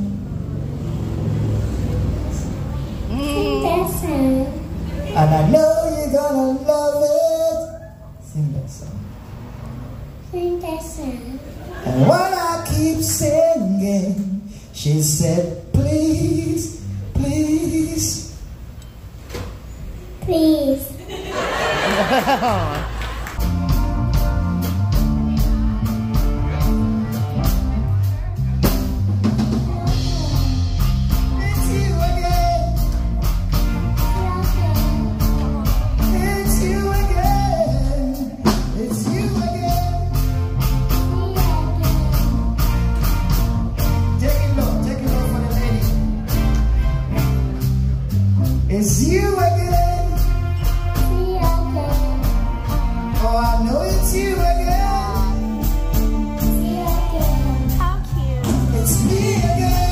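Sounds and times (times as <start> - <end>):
reggae band playing: 0.0 - 8.2, 9.1 - 19.1, 20.3 - 59.9
bass holding low notes: 0.0 - 10.4, 11.9 - 18.8, 22.4 - 59.9
soft instrumental backing: 23.4 - 59.9.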